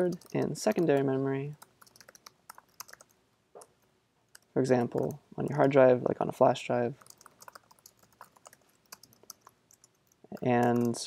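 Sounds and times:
typing on a keyboard: 0:00.0 - 0:03.1, 0:04.4 - 0:05.2, 0:07.0 - 0:11.0.

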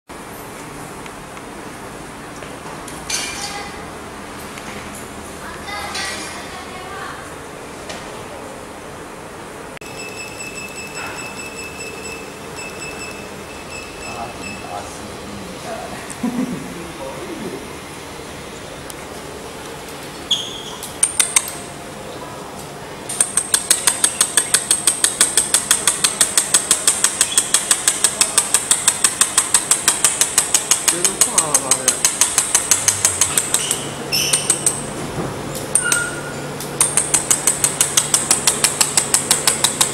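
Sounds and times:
thin high whine: 0:09.8 - 0:16.0.

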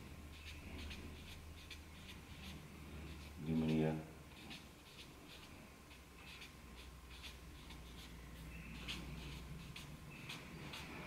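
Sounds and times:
pen scratching on paper: 0:00.3 - 0:11.0.

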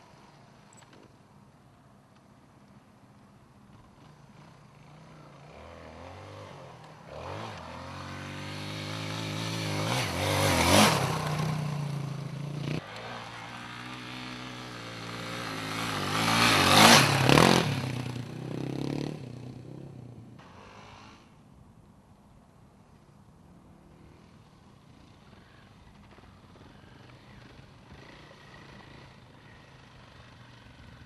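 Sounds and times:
dirt bike engine revving: 0:04.8 - 0:21.3.

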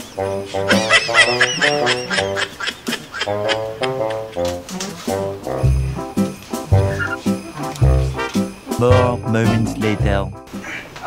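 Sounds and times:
playful comic music: 0:00.0 - 0:10.6.

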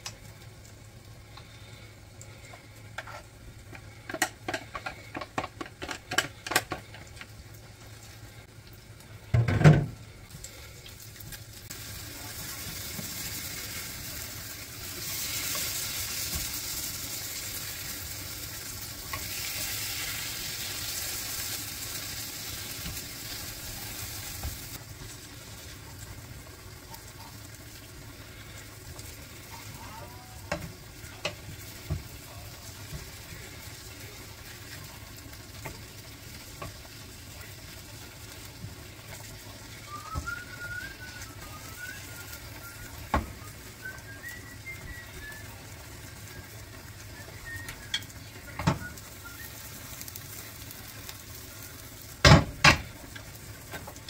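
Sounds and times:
patties sizzling in a pan: 0:00.0 - 0:54.0.

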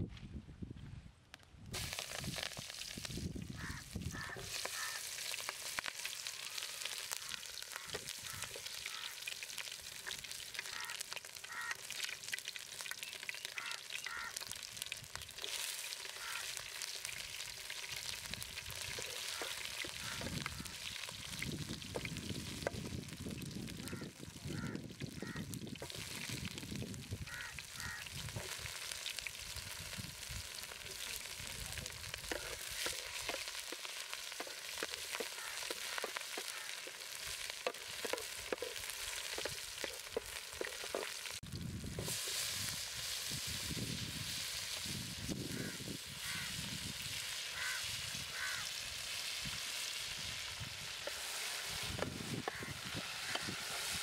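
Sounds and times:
vegetables sizzling in oil: 0:01.8 - 0:54.0
wooden spoon stirring pot: 0:31.8 - 0:41.4.

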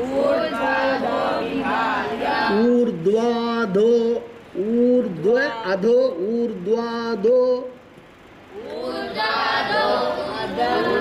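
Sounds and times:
group chanting in unison: 0:00.0 - 0:02.9, 0:08.6 - 0:11.0
teacher reciting: 0:00.0 - 0:07.9, 0:08.5 - 0:11.0.

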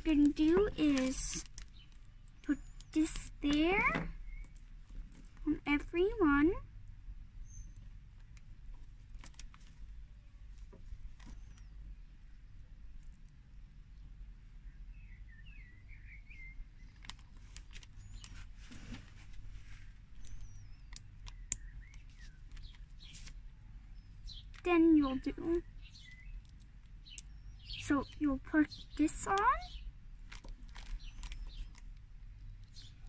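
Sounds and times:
low background hum: 0:00.0 - 0:33.0
faint bird chirps: 0:14.6 - 0:17.1.

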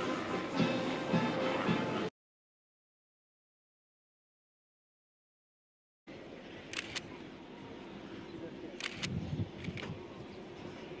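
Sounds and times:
outdoor background noise: 0:00.0 - 0:02.1, 0:06.1 - 0:11.0
camera shutters clicking: 0:06.7 - 0:07.0, 0:08.8 - 0:10.0.

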